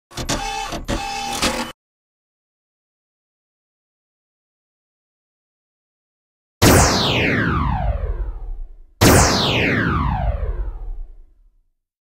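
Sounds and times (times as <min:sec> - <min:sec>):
noisy intro burst with tone: 0:06.6 - 0:11.2.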